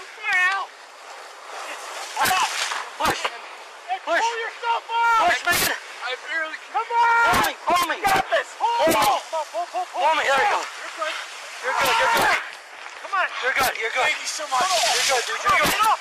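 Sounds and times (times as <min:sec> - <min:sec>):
steady hiss: 0:00.0 - 0:16.0
men shouting and grunting: 0:01.6 - 0:16.0.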